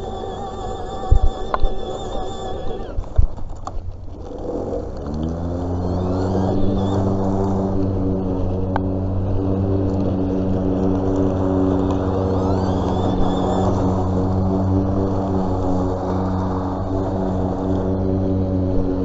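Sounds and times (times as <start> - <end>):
electric lawn mower humming: 0.0 - 19.0.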